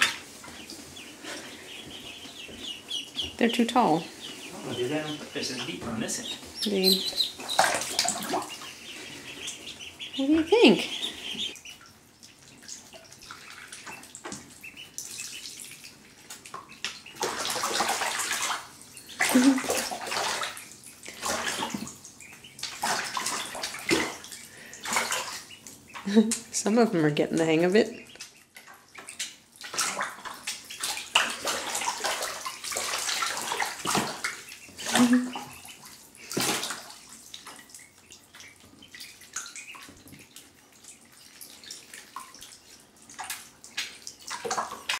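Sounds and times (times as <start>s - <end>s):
bathwater splashing: 0.0s - 44.9s
ducklings peeping: 0.0s - 44.9s.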